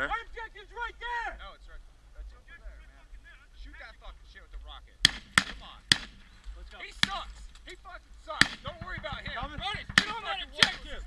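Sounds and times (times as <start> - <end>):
sharp gunshots: 5.0 - 7.4, 8.3 - 11.0.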